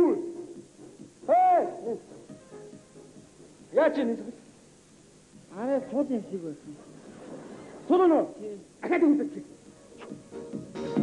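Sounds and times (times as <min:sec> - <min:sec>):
person hooting calls: 0:01.2 - 0:02.2.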